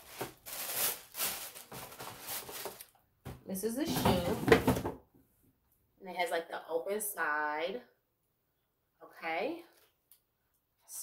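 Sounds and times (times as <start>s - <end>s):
tissue paper rustling: 0.0s - 2.9s.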